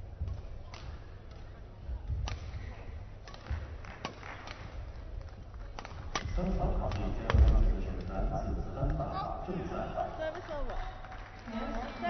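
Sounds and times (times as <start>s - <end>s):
racket striking shuttlecock: 2.2s - 4.8s, 5.7s - 8.1s
voices in hall: 4.6s - 12.0s.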